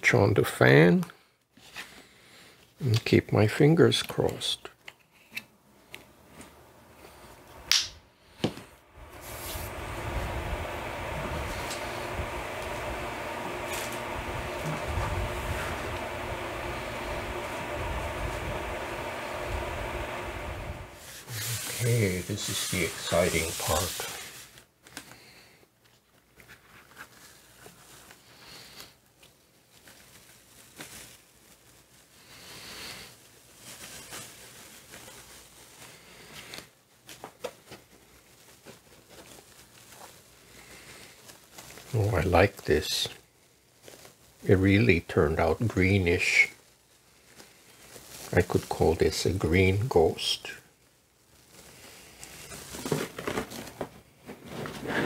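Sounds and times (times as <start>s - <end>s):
electric fan humming: 5.7s - 25.5s, 39.2s - 55.0s
hands rubbing paper: 9.0s - 17.8s, 18.6s - 25.0s, 43.8s - 50.5s.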